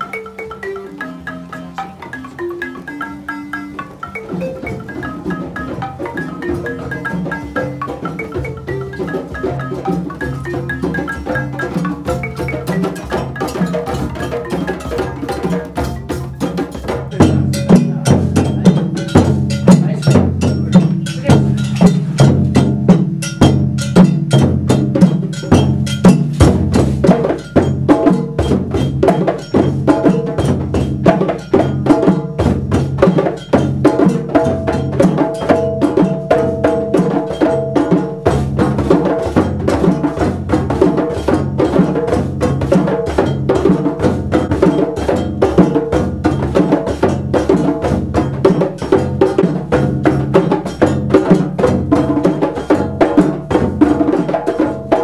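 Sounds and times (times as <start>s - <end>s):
djembe drums playing: 0.0s - 55.0s.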